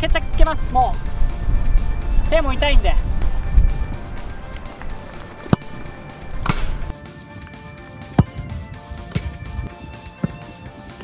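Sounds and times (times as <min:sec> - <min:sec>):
background music: 0:00.0 - 0:11.0
football kick thuds: 0:08.1 - 0:09.6.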